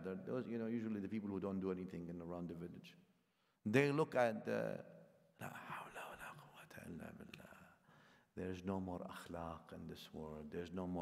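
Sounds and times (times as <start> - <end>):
man speaking softly: 5.4 - 7.8, 8.4 - 11.0.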